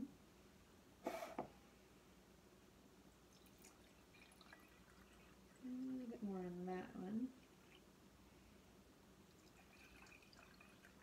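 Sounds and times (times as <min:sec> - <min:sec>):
water trickling into glass: 0:03.3 - 0:06.2, 0:09.3 - 0:11.0
woman's wordless voice: 0:05.6 - 0:07.4.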